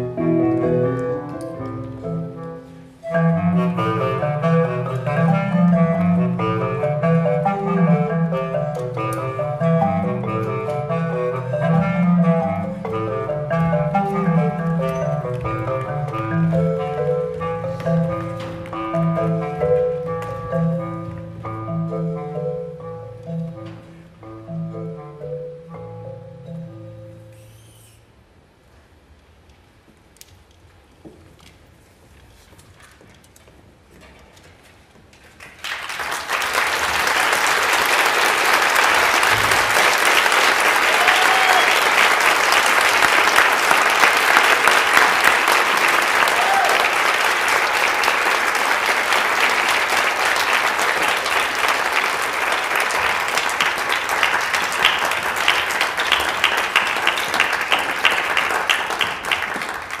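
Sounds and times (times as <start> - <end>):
audience applause: 35.4 - 60.0.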